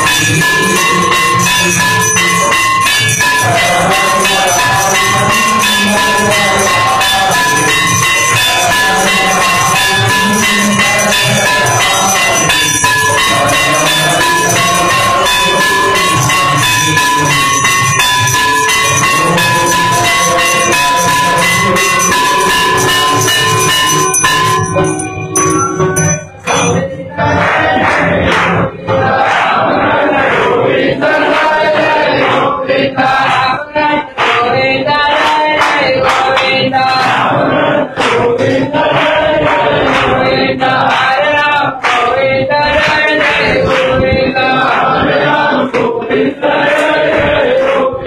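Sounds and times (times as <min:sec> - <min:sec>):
cymbals beating: 0:00.0 - 0:28.8
bells ringing: 0:00.0 - 0:47.8
drums beating: 0:00.0 - 0:48.0.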